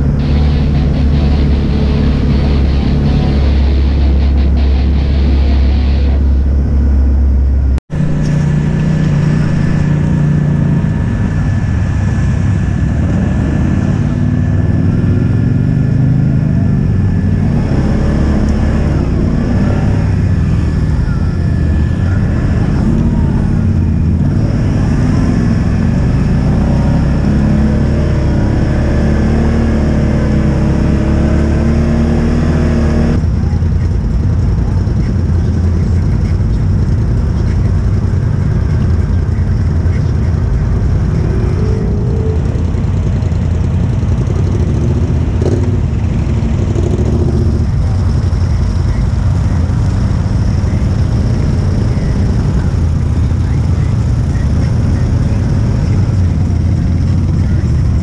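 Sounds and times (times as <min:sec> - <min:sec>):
atv engines revving: 0:00.0 - 0:58.0
low engine rumble: 0:00.0 - 0:58.0.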